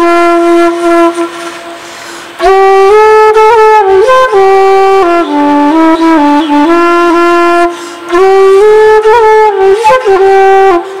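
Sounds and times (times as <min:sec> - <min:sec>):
bamboo flute low note: 0:00.0 - 0:11.0.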